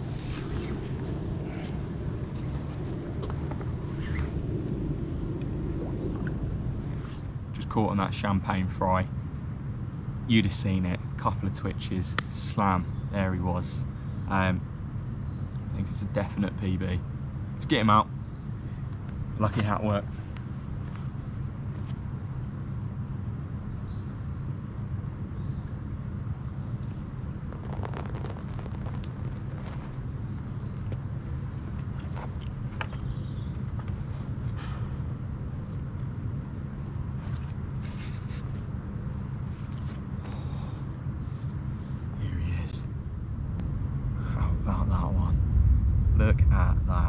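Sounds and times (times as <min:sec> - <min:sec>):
low outdoor rumble: 0:00.0 - 0:47.0.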